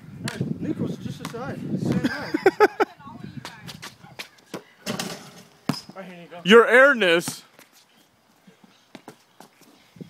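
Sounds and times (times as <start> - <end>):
basketball knocking on concrete: 1.2 - 2.1
basketball hoop clank: 4.8 - 5.9.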